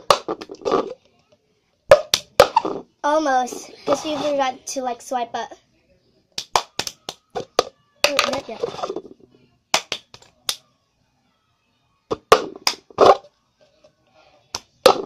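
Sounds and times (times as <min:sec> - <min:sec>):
plastic cup knocking on hard surface: 0:00.0 - 0:01.0, 0:07.3 - 0:09.2
hand claps: 0:06.4 - 0:07.4, 0:09.7 - 0:10.6, 0:12.6 - 0:12.8.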